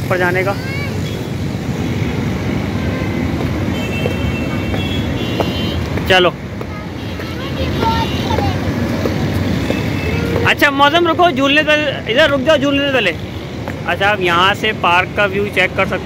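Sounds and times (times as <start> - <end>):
low rumble of road traffic: 0.0 - 16.0.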